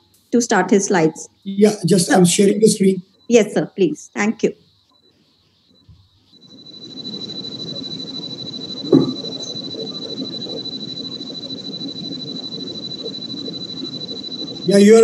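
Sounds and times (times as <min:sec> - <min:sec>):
background noise with high whine: 0:00.0 - 0:15.0.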